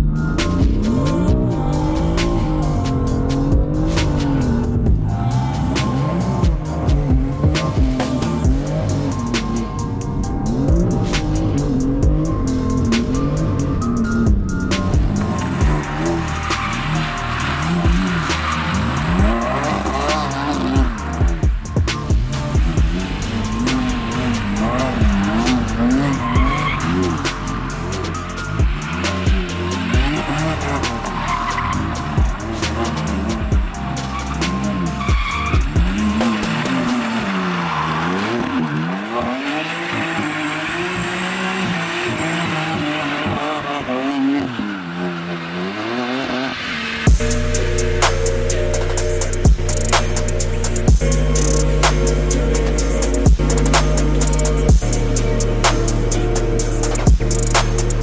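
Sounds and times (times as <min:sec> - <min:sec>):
background music: 0:00.0 - 0:58.0
car engine revving: 0:00.0 - 0:58.0
tyre squeal: 0:13.9 - 0:21.5, 0:22.2 - 0:47.0.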